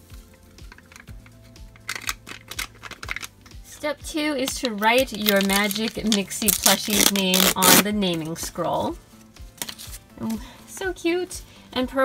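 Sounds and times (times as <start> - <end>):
soft background music: 0.0 - 12.0
foil packet crinkling: 4.5 - 7.8.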